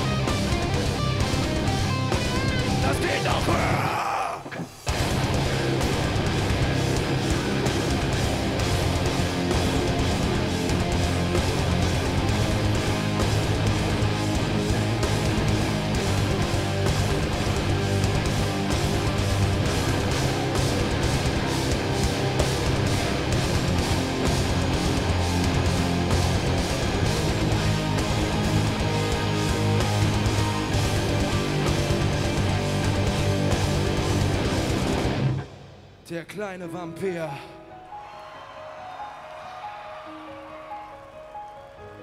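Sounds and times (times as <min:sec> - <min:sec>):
metal band playing loudly: 0:00.0 - 0:35.6.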